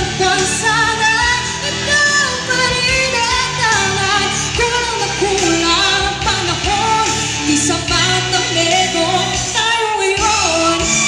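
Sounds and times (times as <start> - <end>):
woman singing pop song: 0.0 - 11.0.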